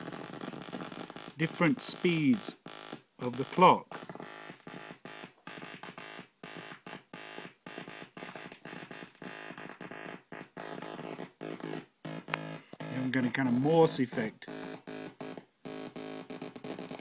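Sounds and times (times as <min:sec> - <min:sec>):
buzzy synthesizer tone chopping: 0:00.0 - 0:17.0.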